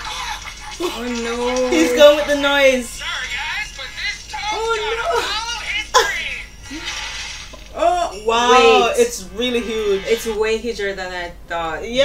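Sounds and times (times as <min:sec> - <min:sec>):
voices crying out: 0:00.9 - 0:03.0, 0:07.7 - 0:10.5.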